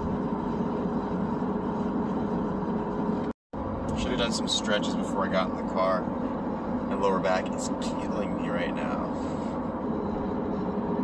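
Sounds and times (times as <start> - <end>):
car road and engine noise: 0.0 - 11.0.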